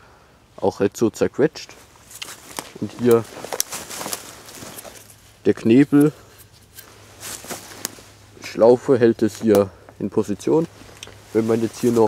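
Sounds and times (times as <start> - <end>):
person speaking: 0.6 - 6.5, 8.3 - 12.0
handling rustle: 1.6 - 12.0.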